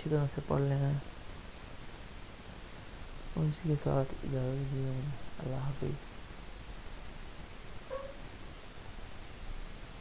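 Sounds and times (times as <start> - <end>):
faint hiss: 0.0 - 10.0
small animal call: 7.8 - 8.3.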